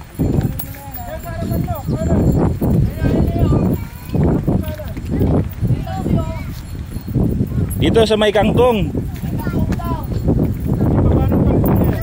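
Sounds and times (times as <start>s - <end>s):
distant people calling: 0.0s - 10.6s
heavy low thumps and rumbling: 1.4s - 12.0s.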